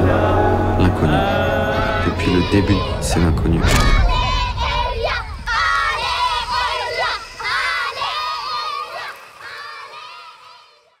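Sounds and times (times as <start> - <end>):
children shouting and cheering: 2.0 - 11.0.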